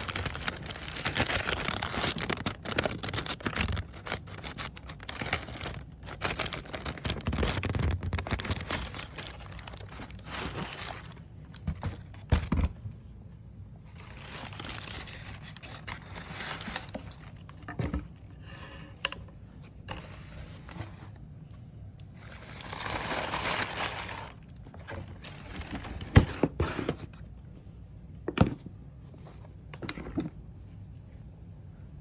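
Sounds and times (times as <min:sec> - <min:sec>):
paper and cardboard rustling: 0:00.0 - 0:12.9, 0:13.9 - 0:21.2, 0:22.2 - 0:27.2.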